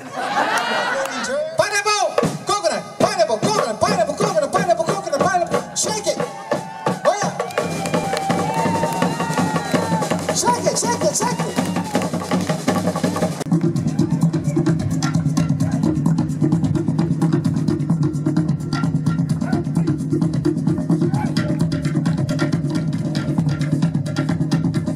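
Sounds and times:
fast drumming: 2.0 - 24.9.

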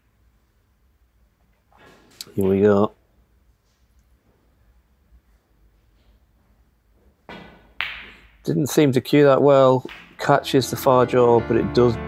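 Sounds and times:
cue striking ball: 7.3 - 8.3, 9.9 - 10.2
snooker balls clicking: 7.3 - 8.4, 9.8 - 10.4.

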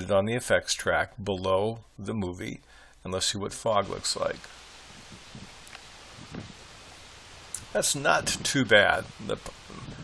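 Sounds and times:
steady outdoor hiss: 0.0 - 10.0
soft low bumps: 3.7 - 10.0.

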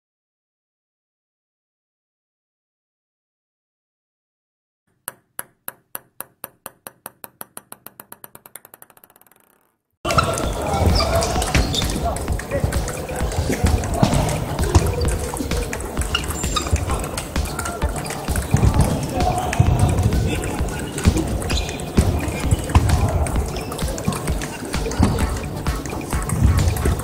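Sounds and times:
balls clicking at many tables: 4.9 - 27.0
table tennis ball bouncing: 4.9 - 27.0
voices: 10.1 - 27.0.

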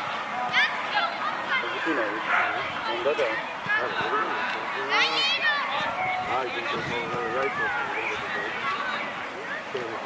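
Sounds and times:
people shouting calls: 0.0 - 9.9.

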